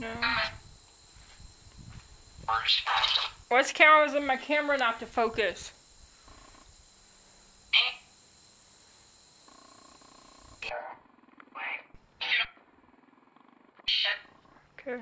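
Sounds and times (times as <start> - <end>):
faint buzzing tones: 0.0 - 15.0.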